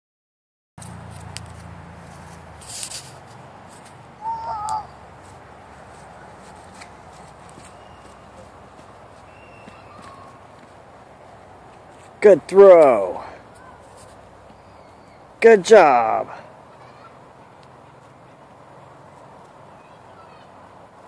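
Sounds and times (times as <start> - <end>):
brief rustle: 0.8 - 4.0
outdoor background noise: 0.8 - 21.0.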